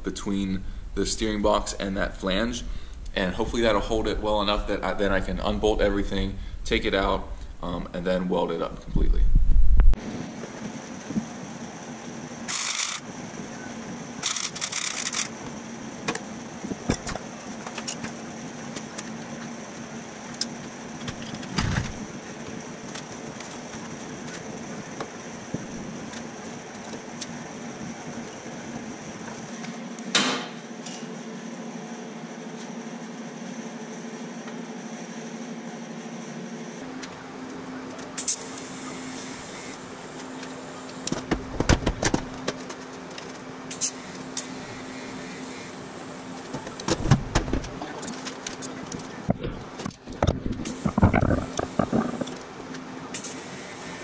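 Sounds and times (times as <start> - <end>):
steady shop hum: 0.0 - 54.0.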